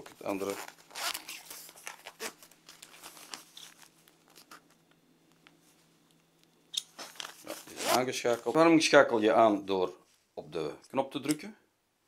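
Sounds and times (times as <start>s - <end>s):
fabric rustling and handling: 0.0s - 10.4s.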